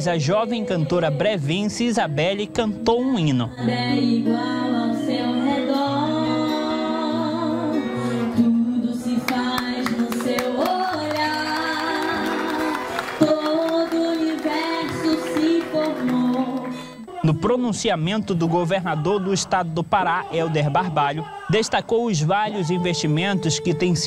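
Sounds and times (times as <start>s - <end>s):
woman singing a hymn: 0.0s - 17.8s, 22.5s - 24.0s.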